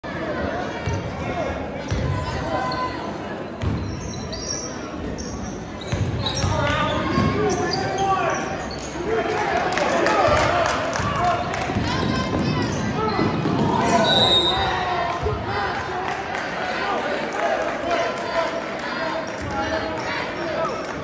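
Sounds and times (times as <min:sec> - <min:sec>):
sneakers squeaking: 0:03.6 - 0:09.0, 0:12.0 - 0:14.7.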